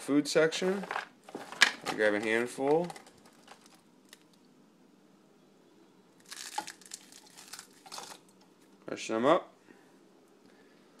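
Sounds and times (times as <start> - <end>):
nuts rustling and crunching: 0.6 - 4.4, 6.2 - 8.4.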